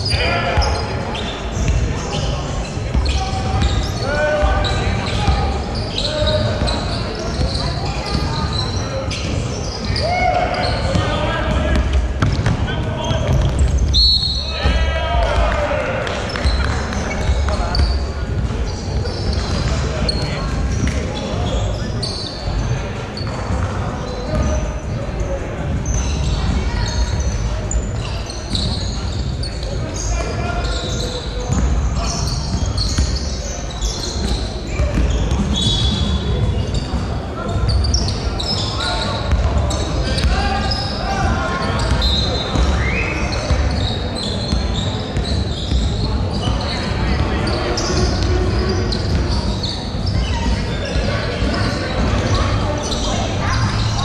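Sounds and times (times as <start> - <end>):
basketball bouncing on hardwood: 11.7 - 12.6
players shouting: 12.6 - 17.9.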